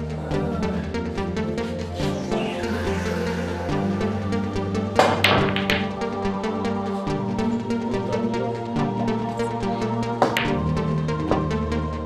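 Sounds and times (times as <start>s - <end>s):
background music with beat: 0.0s - 12.0s
billiard balls clicking: 5.0s - 6.0s, 10.2s - 10.7s
cue striking ball: 5.0s - 6.0s, 10.2s - 10.7s.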